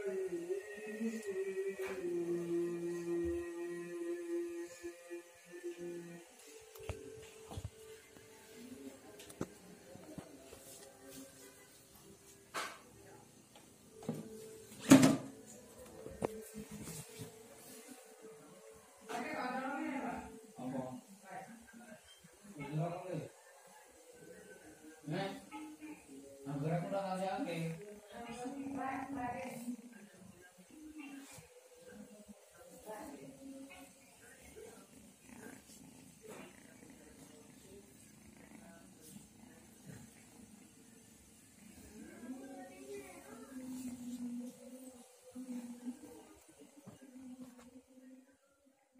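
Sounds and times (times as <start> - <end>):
voice chanting recitation: 0.0 - 11.9, 41.7 - 48.3.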